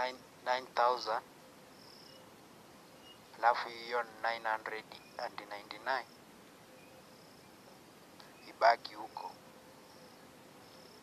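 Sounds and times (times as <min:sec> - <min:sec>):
insect chirping: 0:00.0 - 0:11.0.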